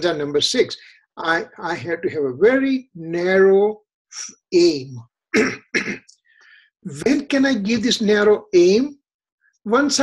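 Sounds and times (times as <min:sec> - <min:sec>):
man clearing his throat: 0:05.4 - 0:06.1.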